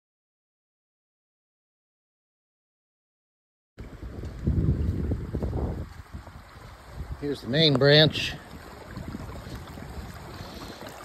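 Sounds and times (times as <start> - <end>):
rocky creek running: 3.8 - 11.0
wind buffeting microphone: 3.8 - 11.0.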